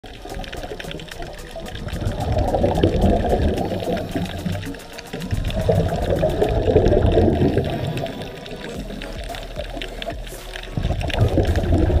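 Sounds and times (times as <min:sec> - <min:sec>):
underwater exhaled breath bubbling: 0:00.0 - 0:12.0.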